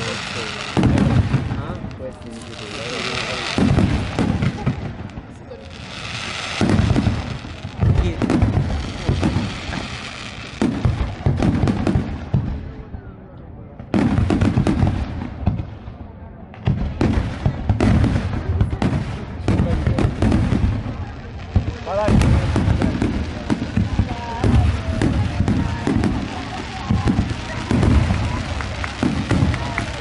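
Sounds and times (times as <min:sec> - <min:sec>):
fireworks bangs and crackling: 0:00.0 - 0:30.0.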